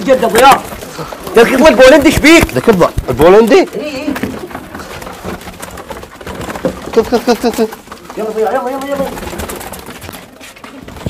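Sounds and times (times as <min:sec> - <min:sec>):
pigeons cooing: 0:03.7 - 0:11.0.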